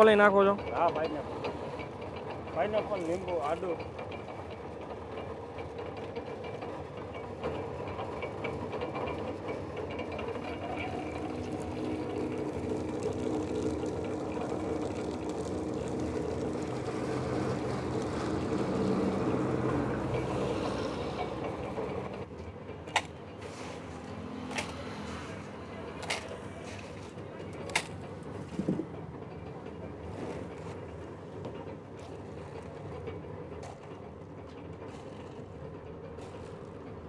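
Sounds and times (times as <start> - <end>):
sugarcane crusher grinding: 7.3 - 22.3.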